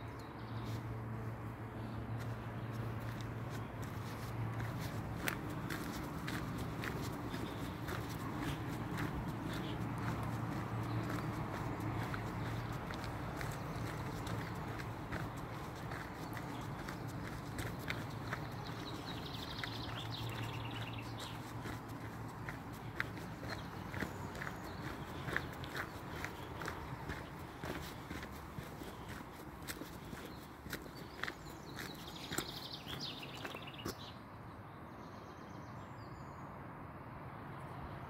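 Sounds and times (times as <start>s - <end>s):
footsteps on gravel: 2.2s - 34.1s.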